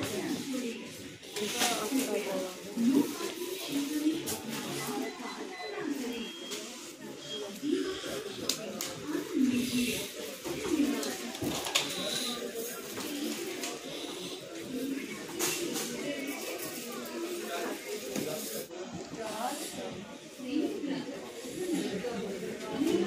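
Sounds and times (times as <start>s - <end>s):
indistinct voices talking: 0.0s - 23.0s.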